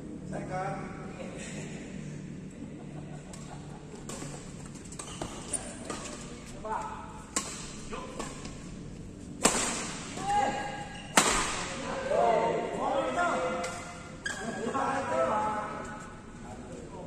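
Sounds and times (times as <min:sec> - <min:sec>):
badminton racquets striking shuttlecock: 0:03.4 - 0:06.4, 0:07.2 - 0:08.6, 0:09.3 - 0:10.2, 0:11.0 - 0:11.8.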